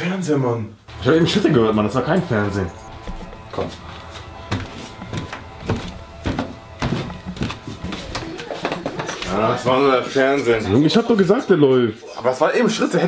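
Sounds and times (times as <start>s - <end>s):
footsteps in a house: 2.4s - 10.2s.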